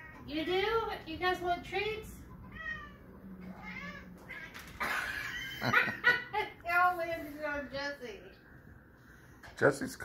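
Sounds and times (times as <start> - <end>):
cat meowing: 2.4 - 4.8.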